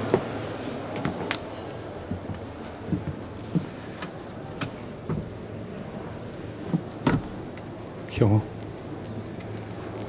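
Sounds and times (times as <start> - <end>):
bus cabin low hum: 0.0 - 10.0.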